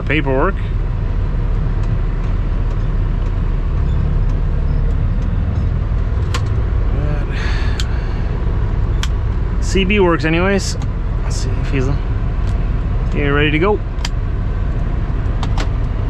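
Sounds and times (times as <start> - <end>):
diesel truck engine rumbling: 0.0 - 16.0
sharp clicks: 9.0 - 9.2, 14.0 - 14.2.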